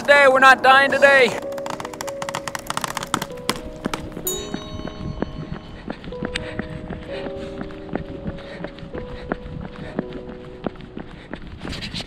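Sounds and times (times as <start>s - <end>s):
held music notes: 0.0s - 11.0s.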